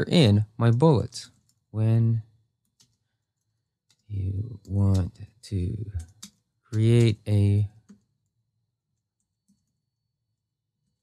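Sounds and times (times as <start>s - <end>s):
keyboard typing clicks: 2.6s - 3.0s, 5.9s - 8.1s.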